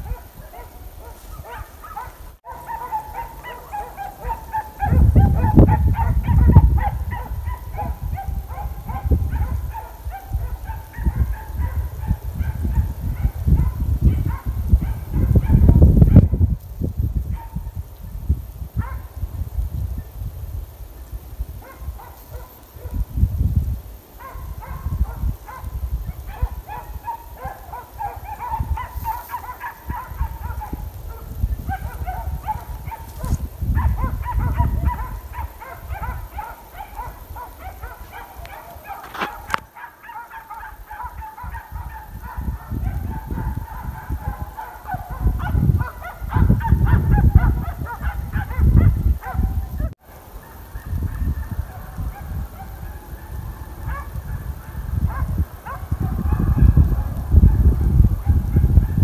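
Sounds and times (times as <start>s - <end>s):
hounds baying: 0.0s - 16.2s, 24.2s - 57.6s
wind rumbling on microphone: 0.0s - 59.0s.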